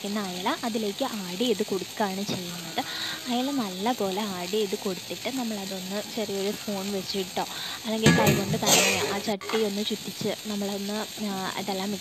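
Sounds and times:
curry sizzling in a pot: 0.0s - 12.0s.

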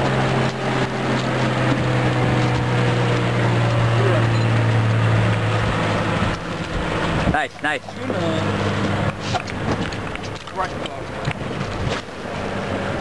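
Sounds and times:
boat engine humming: 0.0s - 13.0s.

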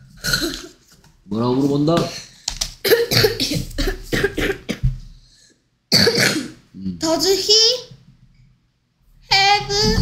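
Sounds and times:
person coughing: 2.8s - 4.9s, 5.9s - 6.6s.

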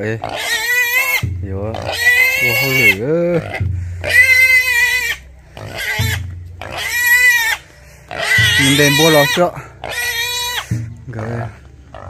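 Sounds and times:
pig grunt-squeal: 0.2s - 12.0s
pig squealing loudly: 0.2s - 12.0s.

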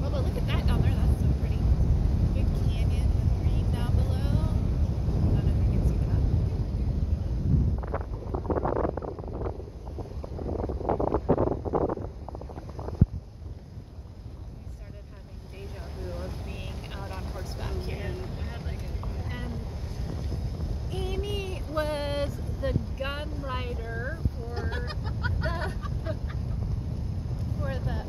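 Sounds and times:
vehicle rumble on dirt road: 0.0s - 28.0s
wind buffeting microphone: 0.0s - 28.0s
crackling noise: 7.4s - 13.8s.

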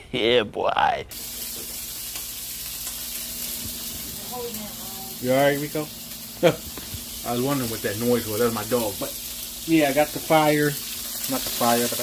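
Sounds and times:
butter sizzling in a frying pan: 1.1s - 12.0s.

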